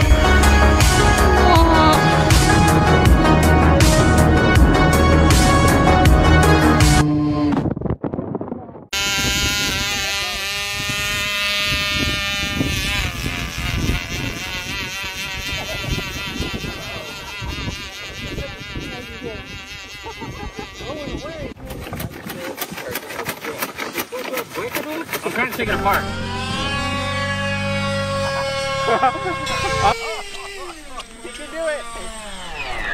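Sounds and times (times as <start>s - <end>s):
model airplane motor whining: 0.0s - 7.3s, 9.0s - 32.9s
rough rapid clicking: 21.5s - 25.8s.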